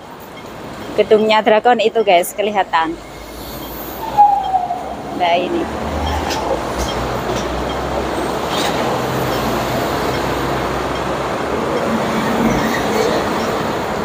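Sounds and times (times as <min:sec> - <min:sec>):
bus driving past: 0:02.3 - 0:14.0.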